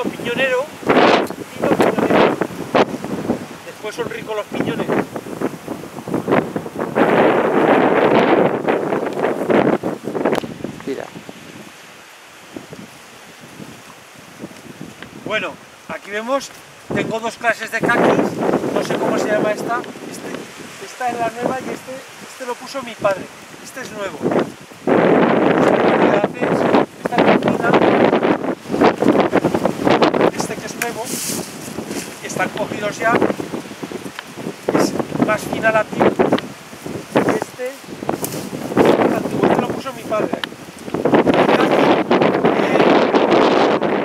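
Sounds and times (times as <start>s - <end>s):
grass and branches rustling: 0.0s - 44.0s
wind gusting across microphone: 0.0s - 44.0s.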